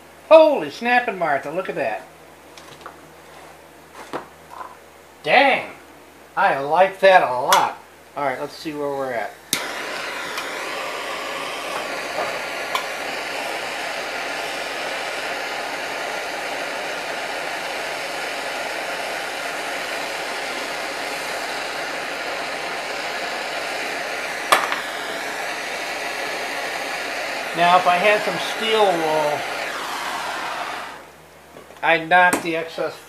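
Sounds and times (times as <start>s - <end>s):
gas torch hissing: 8.5s - 31.2s.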